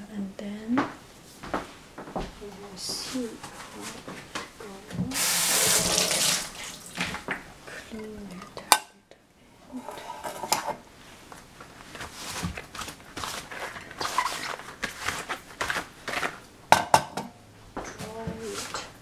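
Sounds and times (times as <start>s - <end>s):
cloth rubbing across tiles: 5.2s - 7.2s, 11.0s - 16.4s, 18.4s - 18.9s.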